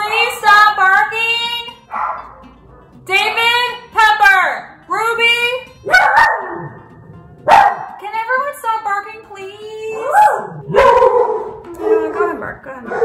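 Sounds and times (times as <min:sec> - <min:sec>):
small dog barking: 0:01.9 - 0:02.3, 0:05.9 - 0:06.7, 0:07.5 - 0:08.0, 0:10.0 - 0:12.3.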